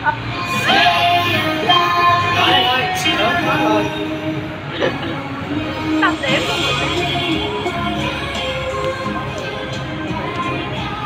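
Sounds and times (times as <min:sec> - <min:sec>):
song through portable speaker: 0:00.0 - 0:11.0.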